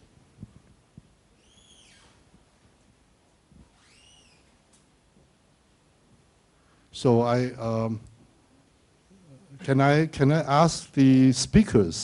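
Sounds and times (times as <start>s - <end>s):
faint high-pitched squeaks: 1.4s - 2.2s, 3.7s - 4.6s.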